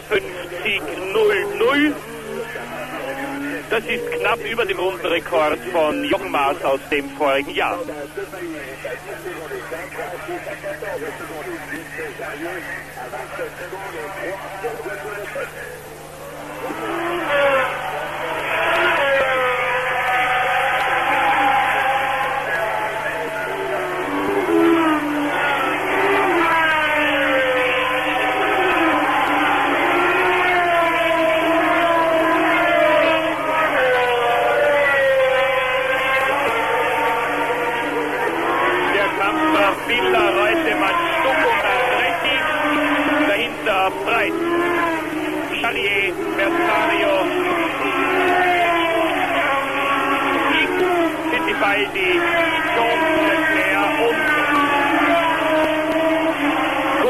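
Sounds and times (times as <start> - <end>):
race car engines passing: 0.0 - 57.0.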